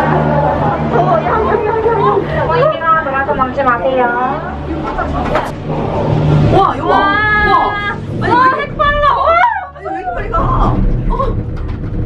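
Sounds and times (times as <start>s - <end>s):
people talking: 0.0s - 11.4s
steady low hum: 0.0s - 12.0s.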